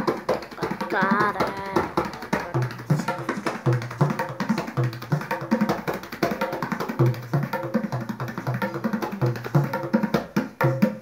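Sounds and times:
tabla drumming: 0.0 - 11.0.

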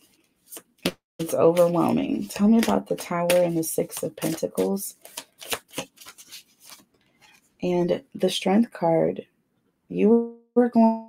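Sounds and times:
cards being shuffled: 0.1 - 7.4.

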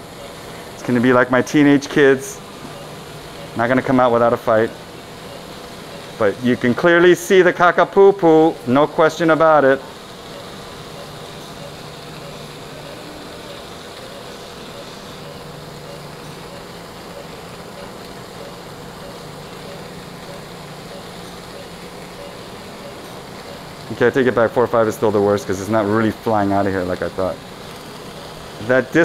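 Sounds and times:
faint high whine: 0.0 - 29.0
hiss: 0.0 - 29.0
low mechanical hum: 0.0 - 29.0.

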